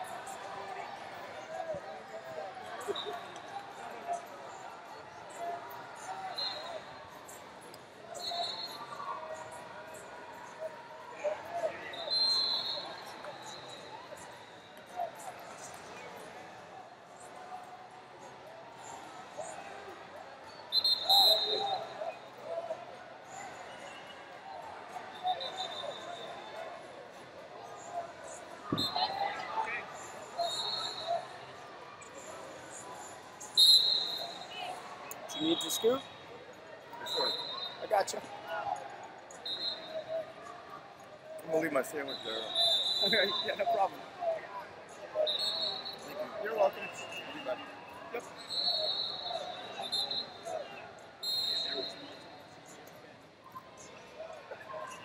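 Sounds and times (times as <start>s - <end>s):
distant voices and shouts: 41.6s - 52.2s.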